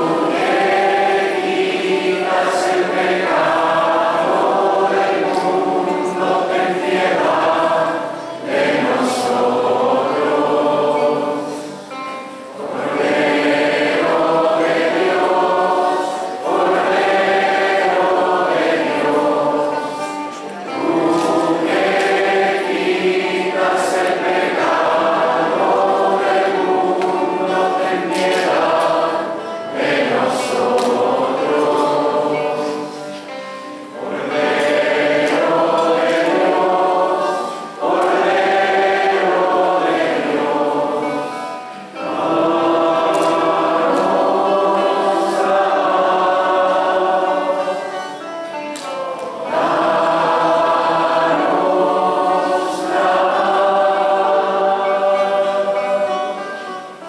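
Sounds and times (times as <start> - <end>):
choir singing a hymn: 0.0 - 57.0.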